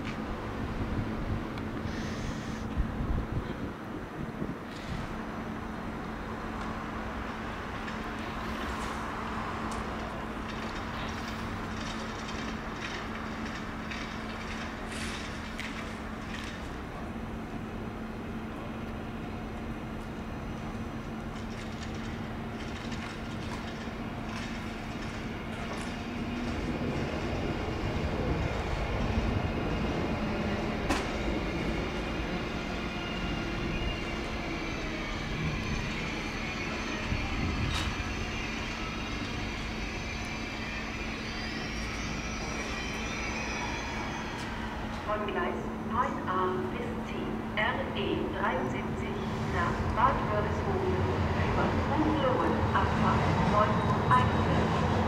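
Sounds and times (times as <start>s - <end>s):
electric train running: 21.2s - 45.1s
falling whines: 33.5s - 45.0s.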